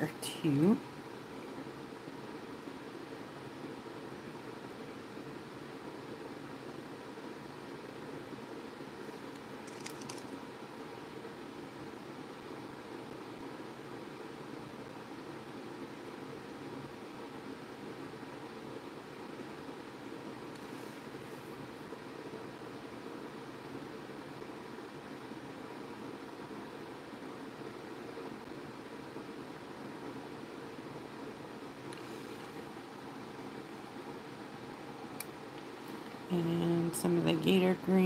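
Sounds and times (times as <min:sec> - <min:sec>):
room noise hiss: 0:00.0 - 0:38.0.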